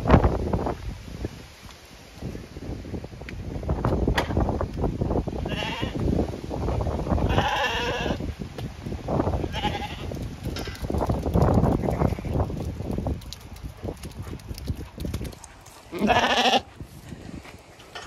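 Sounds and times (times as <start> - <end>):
wind rumble on microphone: 0.0 - 18.0
sheep bleating: 7.3 - 8.2, 15.9 - 16.7.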